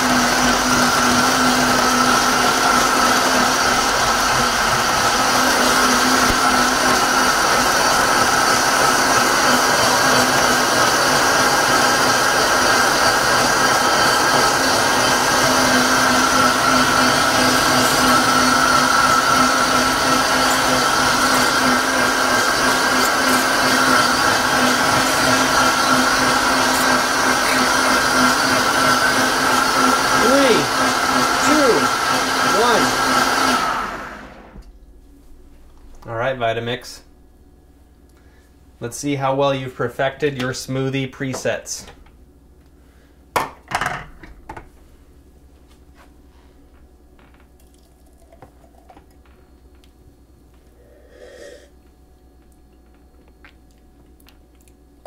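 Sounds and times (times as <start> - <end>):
blender whirring: 0.0 - 34.6, 50.7 - 51.7.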